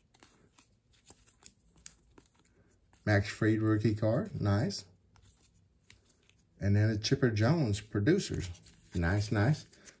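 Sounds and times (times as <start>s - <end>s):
sleeved cards sliding and clicking: 0.0s - 3.4s, 4.2s - 6.5s, 8.3s - 10.0s.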